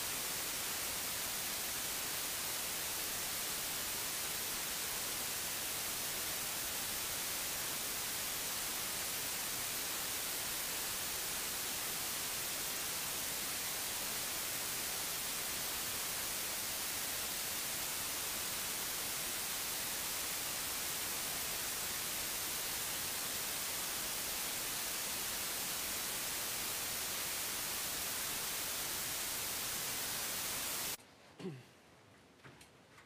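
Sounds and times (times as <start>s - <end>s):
steady static hiss: 0.0s - 31.0s.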